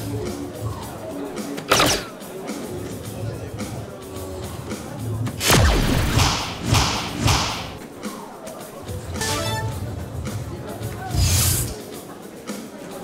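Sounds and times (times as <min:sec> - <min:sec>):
dart striking dartboard: 0:06.2 - 0:07.8
bright electronic sound effects: 0:09.2 - 0:09.9
electronic jingle: 0:09.2 - 0:10.0.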